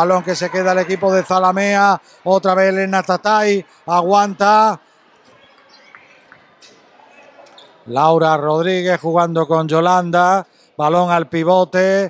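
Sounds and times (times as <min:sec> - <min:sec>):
man commentating: 0:00.0 - 0:04.8, 0:07.9 - 0:12.0.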